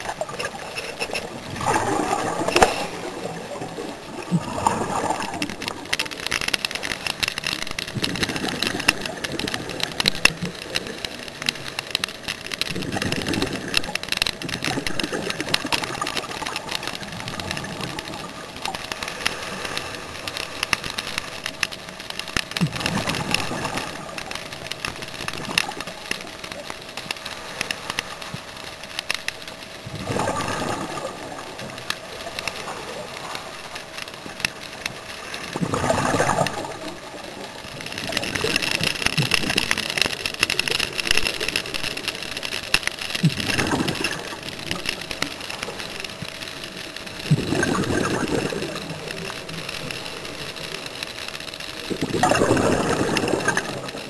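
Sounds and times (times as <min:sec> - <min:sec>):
diver exhaling regulator bubbles: 0:00.0 - 0:05.9, 0:29.9 - 0:31.4, 0:35.6 - 0:36.8, 0:43.2 - 0:44.4, 0:47.3 - 0:49.3, 0:51.9 - 0:54.0
faint steady hum: 0:00.0 - 0:54.0
fine underwater crackle: 0:00.0 - 0:54.0.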